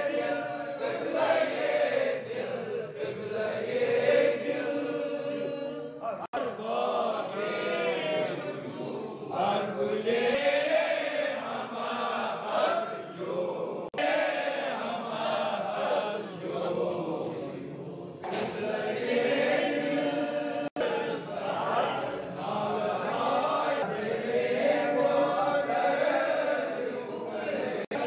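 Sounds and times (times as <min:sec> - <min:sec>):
men chanting together: 0:00.0 - 0:28.0.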